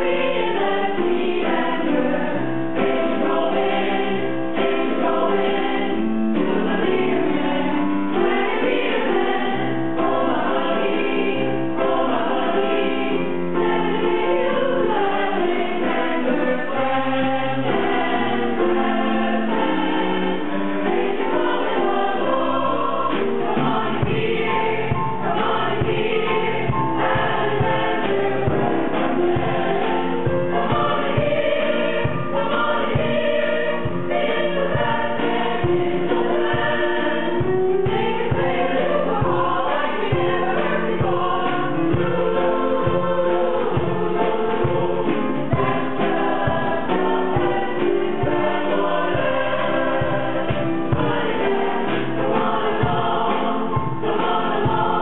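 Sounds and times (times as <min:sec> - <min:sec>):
mixed choir singing ragtime: 0:00.0 - 0:55.0.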